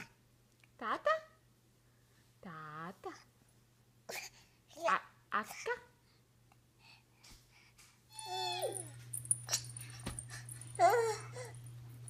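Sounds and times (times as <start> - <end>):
baby squealing: 8.1 - 8.9
steady low hum: 8.3 - 12.0.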